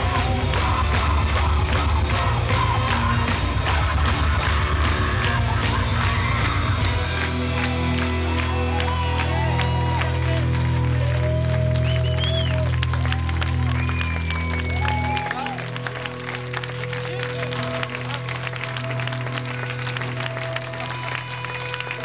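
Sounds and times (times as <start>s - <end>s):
loud music with heavy bass: 0.0s - 11.8s
audience applauding: 0.0s - 22.0s.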